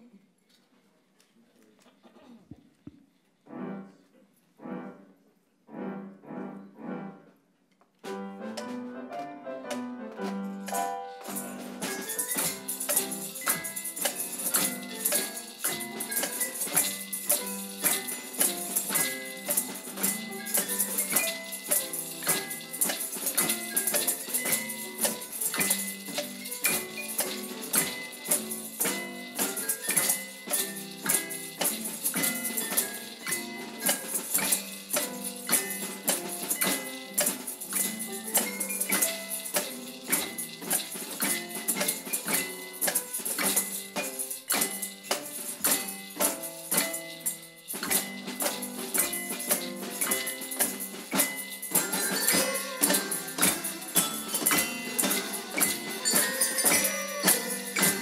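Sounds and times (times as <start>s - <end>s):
percussion band playing a march: 8.0s - 58.0s
tambourines: 8.1s - 58.0s
bells: 10.7s - 58.0s.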